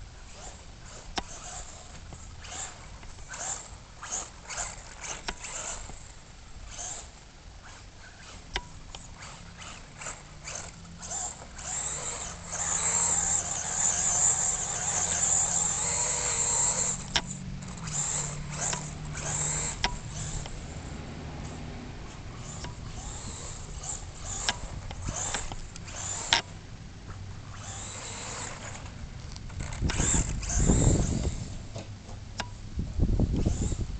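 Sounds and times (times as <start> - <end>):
tyres churning dirt: 0.0 - 32.3
electric motor whining: 0.2 - 26.6, 27.4 - 31.8, 33.2 - 33.9.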